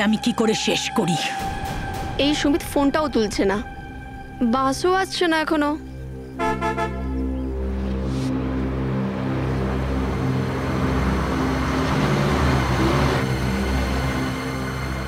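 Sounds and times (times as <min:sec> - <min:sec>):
low musical drone: 0:00.0 - 0:15.0
bus horn toots: 0:06.4 - 0:07.3.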